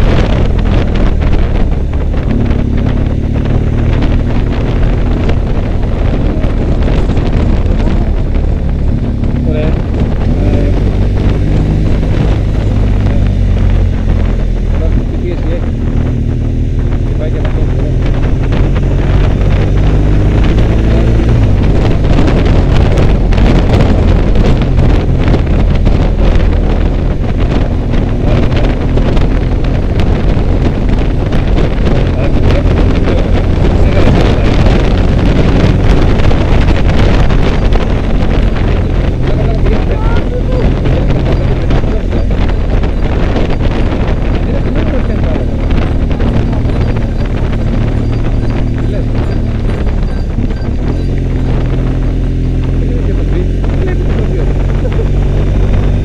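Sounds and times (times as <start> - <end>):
motorcycle engine: 0.0 - 56.0
wind buffeting microphone: 0.0 - 56.0.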